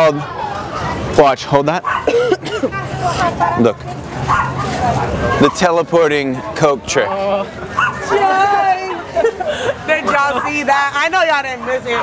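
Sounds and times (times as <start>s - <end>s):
people's voices: 0.0s - 12.0s
cough: 2.0s - 2.8s.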